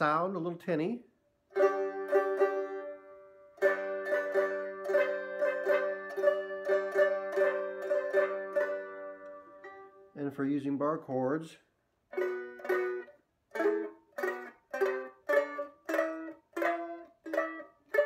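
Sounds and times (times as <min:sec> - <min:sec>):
plucked banjo notes: 0:00.0 - 0:10.8, 0:12.1 - 0:18.0.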